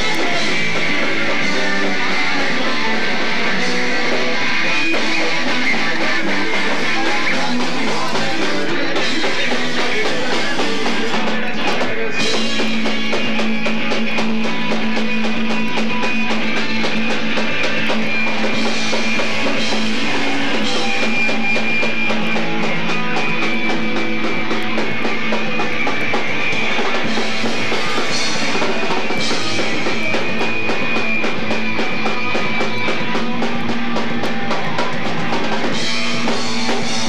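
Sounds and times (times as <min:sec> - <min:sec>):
bass guitar: 0:00.0 - 0:37.0
drum kit: 0:00.0 - 0:37.0
electric guitars: 0:00.0 - 0:37.0.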